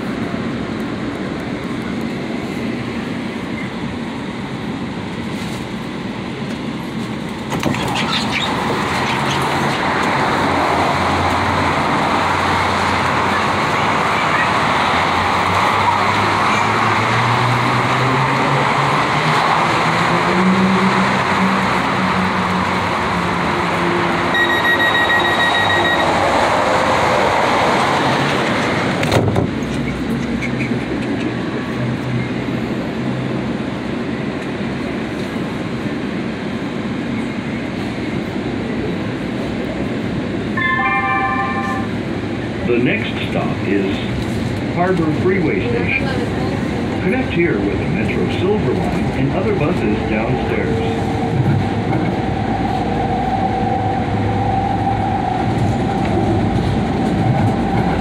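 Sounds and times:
train wheels rumbling on rail: 0:00.0 - 0:58.0
short beep: 0:24.3 - 0:26.2, 0:40.6 - 0:42.0
short multi-note chime: 0:40.6 - 0:41.9.

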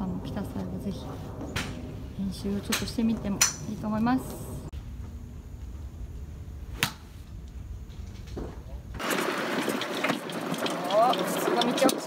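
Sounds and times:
low rumble: 0:00.0 - 0:09.0
golf club striking ball: 0:02.7 - 0:03.8, 0:06.8 - 0:07.1
golf cart moving: 0:09.0 - 0:12.0.

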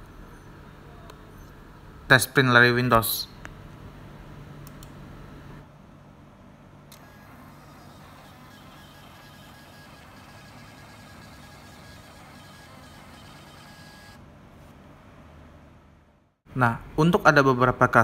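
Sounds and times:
printer paper feed whine: 0:06.9 - 0:14.2.

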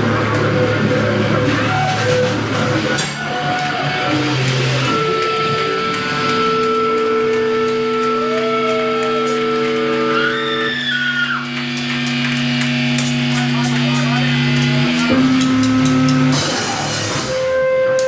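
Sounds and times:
electric guitar and bass drone: 0:00.0 - 0:18.0.

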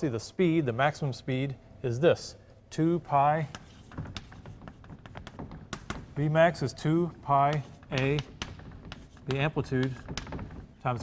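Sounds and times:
chalk on blackboard: 0:03.1 - 0:11.0.

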